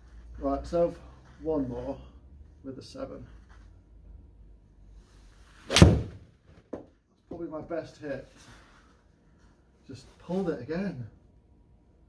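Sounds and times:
golf club striking ball: 5.7 - 6.2.

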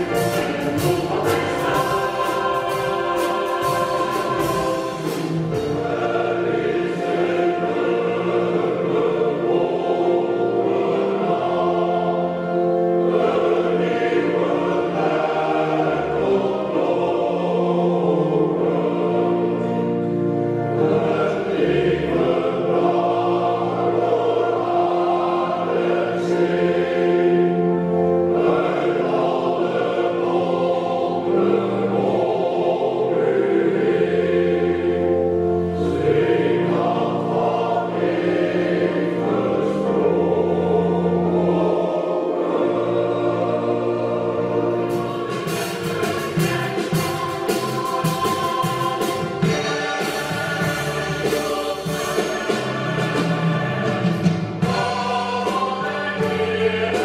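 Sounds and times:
choir singing long chords: 0.0 - 57.0.

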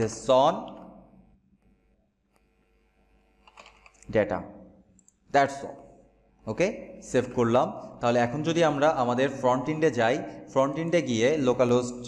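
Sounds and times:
computer keyboard typing: 3.4 - 4.0.

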